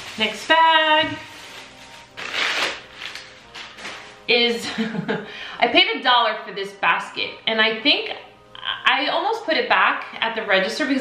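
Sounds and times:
plastic bag rustling and crinkling: 0.0s - 4.3s.

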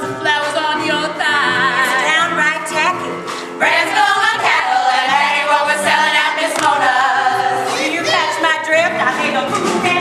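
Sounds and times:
women's chorus singing: 0.0s - 2.7s, 3.6s - 10.0s.

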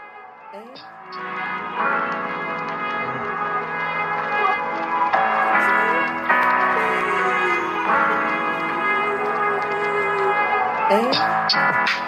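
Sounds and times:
ringing bell-like tones: 0.0s - 12.0s.

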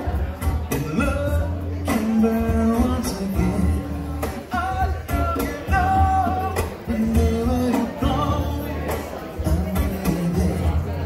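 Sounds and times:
acoustic guitar strumming: 0.0s - 11.0s
congas: 0.0s - 11.0s.

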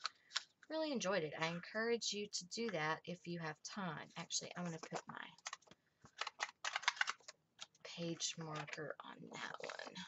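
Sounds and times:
small irregular clicks: 4.9s - 7.8s.

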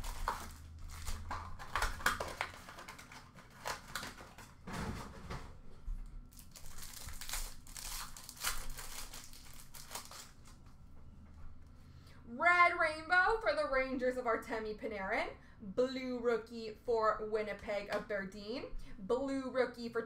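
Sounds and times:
foil wrappers crinkling and tearing: 0.0s - 4.6s, 6.3s - 10.7s.

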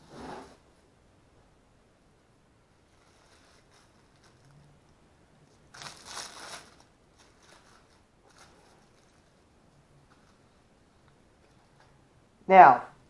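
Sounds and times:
rough scrape: 0.0s - 0.6s
hands rustling and scraping: 2.8s - 4.8s, 5.5s - 12.0s.

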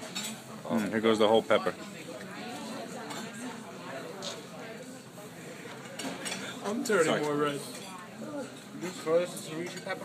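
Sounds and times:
dishes and cutlery clinking: 0.0s - 0.9s, 3.0s - 3.4s, 5.6s - 10.0s
low indistinct voices: 0.0s - 10.0s.

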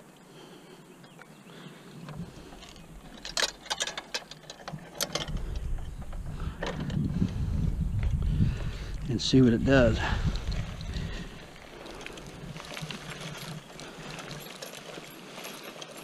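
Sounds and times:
low rumble: 5.2s - 12.8s.

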